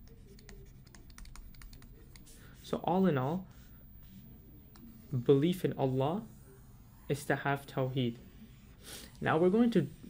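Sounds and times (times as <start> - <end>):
stylus tapping on drawing tablet: 0.1 - 2.3.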